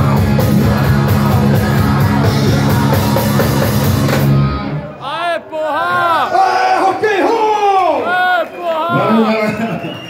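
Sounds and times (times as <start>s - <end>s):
live rock band playing: 0.0s - 4.9s.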